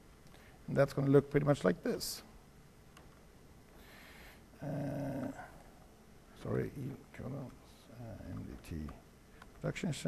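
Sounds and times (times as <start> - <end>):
man humming in hesitation: 4.6 - 5.6.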